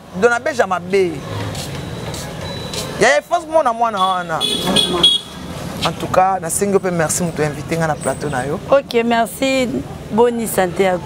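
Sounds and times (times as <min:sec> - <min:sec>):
passing road traffic: 0:00.0 - 0:11.0.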